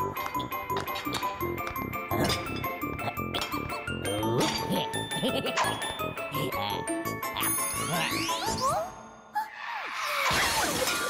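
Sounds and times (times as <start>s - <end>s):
cartoon music with tinkling: 0.0s - 9.2s.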